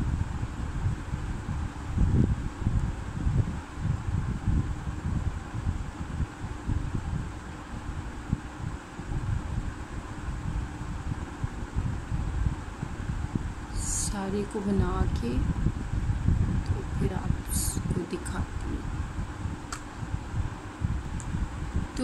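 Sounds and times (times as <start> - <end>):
faint steady hum: 0.0 - 22.0
wind buffeting microphone: 0.0 - 22.0.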